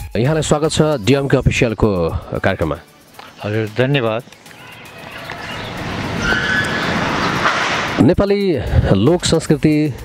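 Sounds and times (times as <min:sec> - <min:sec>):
road vehicle approaching: 0:02.8 - 0:08.2.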